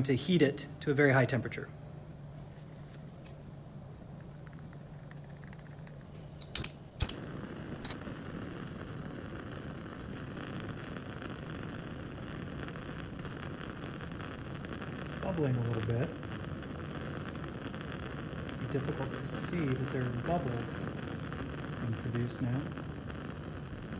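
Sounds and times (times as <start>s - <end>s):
gas burner flame hissing: 2.4s - 23.9s.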